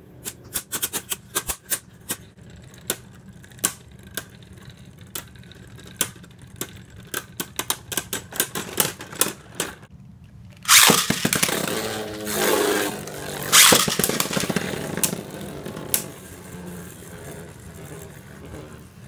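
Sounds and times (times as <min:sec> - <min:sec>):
spinning tops clacking together: 0:10.6 - 0:16.2
spinning top grinding on plastic: 0:10.6 - 0:19.0.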